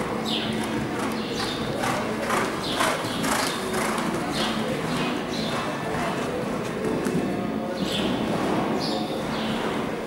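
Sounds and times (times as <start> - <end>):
horse hoofbeats on sand: 0.6 - 6.3.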